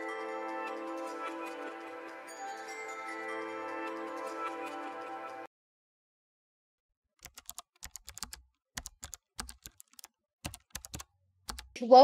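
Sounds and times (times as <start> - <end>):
computer keyboard typing: 7.2 - 11.8.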